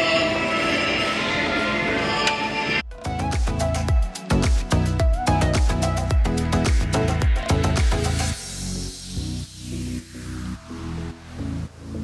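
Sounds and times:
electronic christmas melody: 0.0 - 12.0.

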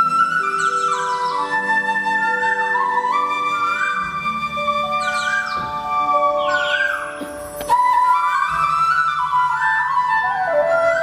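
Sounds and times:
flute-like melody: 0.0 - 11.0.

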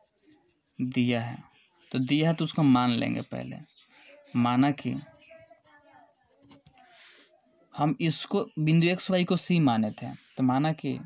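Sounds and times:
pen scratching on paper: 0.0 - 1.7, 3.9 - 7.3
man's voice: 4.3 - 5.1.

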